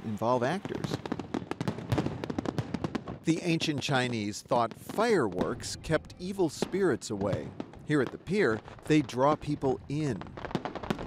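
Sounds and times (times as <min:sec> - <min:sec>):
fireworks crackling and popping: 0:00.0 - 0:11.0.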